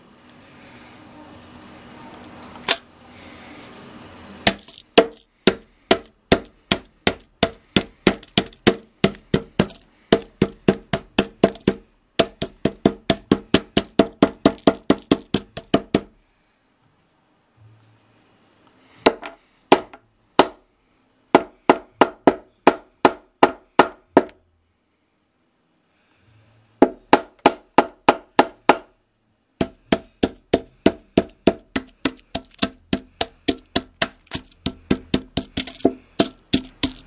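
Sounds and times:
hammer striking plastic calculator: 4.5s - 16.1s, 29.6s - 37.0s.

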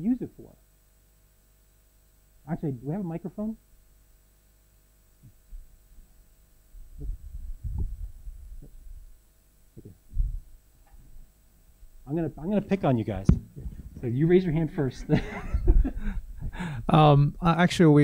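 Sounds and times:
faint steady hum: 0.0s - 18.0s
microphone handling thumps: 6.8s - 9.1s, 9.7s - 11.3s, 13.1s - 14.9s, 15.6s - 16.9s.

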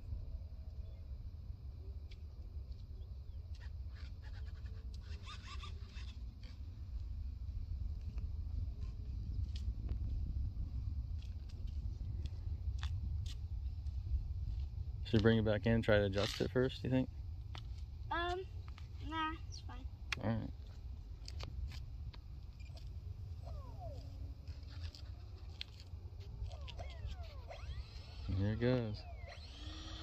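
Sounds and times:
wind buffeting microphone: 5.2s - 18.7s.

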